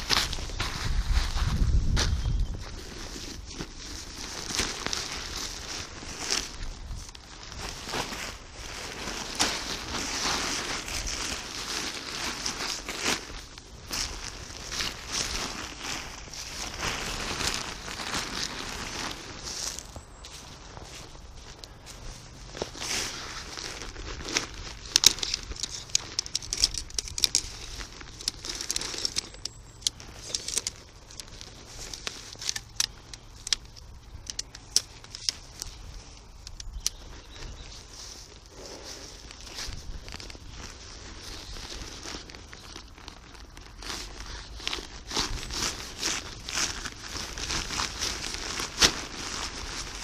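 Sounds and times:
tent fabric rustling and crinkling: 0.0s - 50.0s.

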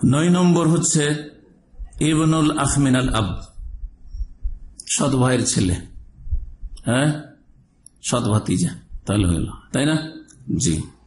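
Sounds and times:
man speaking: 0.0s - 1.4s, 2.0s - 3.5s, 4.8s - 6.0s, 6.8s - 11.0s
low hum: 1.5s - 4.8s
faint low thuds: 3.2s - 4.8s, 5.9s - 6.8s.

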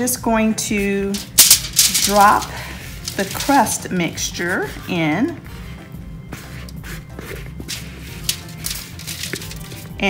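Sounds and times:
background music: 0.0s - 10.0s
cookie crust mixture dropping on foil: 1.1s - 3.8s, 7.8s - 9.8s.

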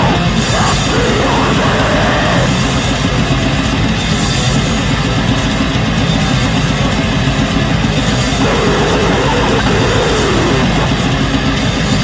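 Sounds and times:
heavy metal music: 0.0s - 12.0s.

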